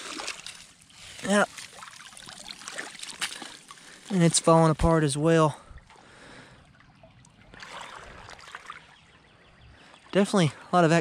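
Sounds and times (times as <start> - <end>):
creek water trickling: 0.0 - 11.0.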